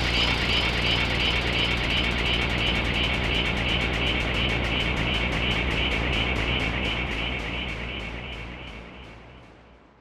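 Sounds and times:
rumbling noisy synth texture: 0:00.0 - 0:10.0.

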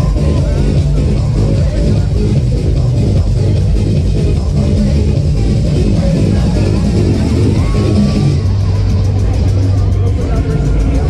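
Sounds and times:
high ticking beat: 0:00.0 - 0:11.0
loud fairground music: 0:00.0 - 0:11.0
steady low drone: 0:00.0 - 0:11.0.

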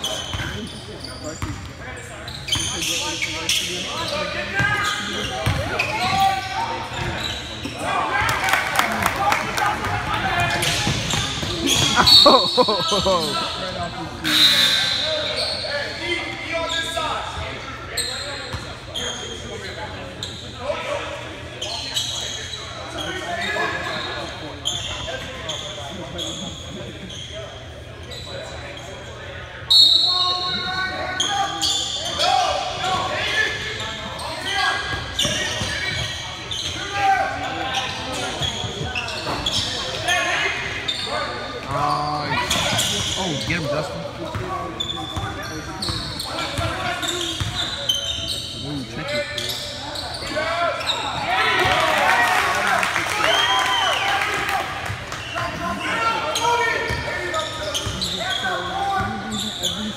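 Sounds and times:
players and spectators voices: 0:00.0 - 0:59.9.

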